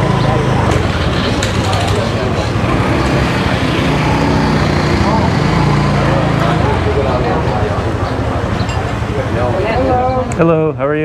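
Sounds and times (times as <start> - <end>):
motorbike and car engines: 0.0 - 10.8
people talking: 0.0 - 11.0.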